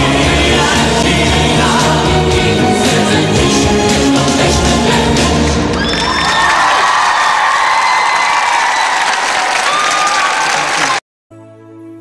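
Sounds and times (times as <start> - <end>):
live band and singing: 0.0 - 5.9
audience applause and cheering: 4.1 - 11.0.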